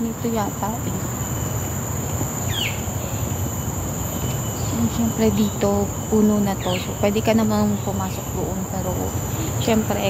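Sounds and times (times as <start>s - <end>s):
insects buzzing drone: 0.0s - 10.0s.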